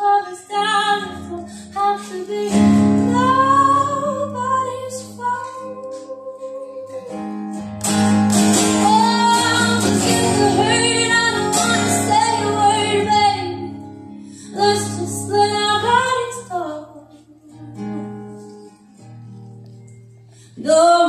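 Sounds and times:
woman singing: 0.0 - 7.6, 8.6 - 17.8, 20.5 - 21.0
strummed acoustic guitars: 0.0 - 21.0.

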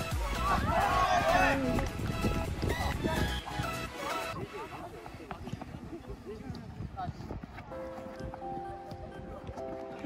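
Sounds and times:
players calling and shouting: 0.0 - 6.2.

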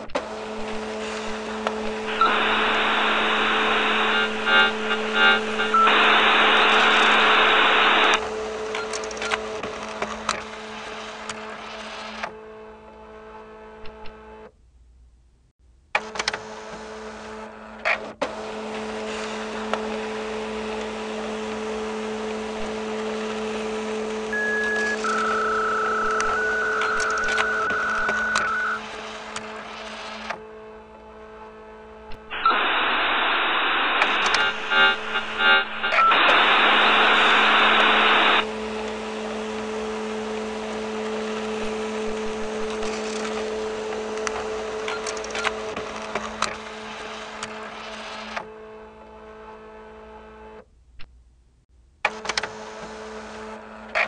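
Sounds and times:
dial-up modem noise: 0.0 - 10.5, 13.8 - 14.2, 22.5 - 23.4, 24.2 - 30.4, 32.1 - 38.6, 39.5 - 48.5
low electrical hum: 12.4 - 16.0, 21.5 - 44.9
clicks: 13.8 - 14.2, 24.3 - 29.5, 32.1 - 39.0.

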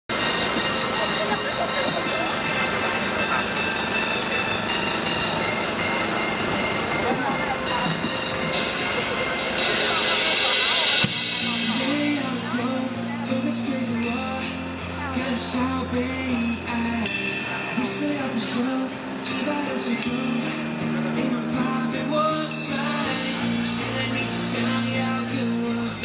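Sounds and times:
crowd chattering: 0.1 - 26.0
music playing: 0.1 - 26.0
street background noise: 0.1 - 26.0.

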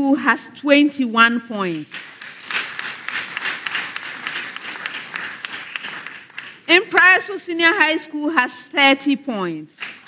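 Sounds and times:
audience applauding: 1.9 - 6.7.

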